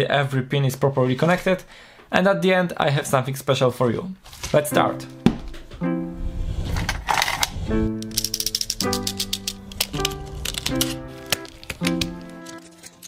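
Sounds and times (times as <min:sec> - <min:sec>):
background music of held chords: 0:04.7 - 0:06.8, 0:07.6 - 0:13.0
plastic packaging clicking and crackling: 0:08.0 - 0:13.0.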